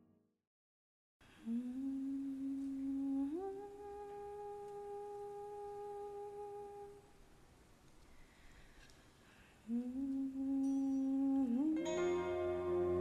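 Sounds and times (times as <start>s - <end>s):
person humming: 1.4s - 7.1s, 9.6s - 13.0s.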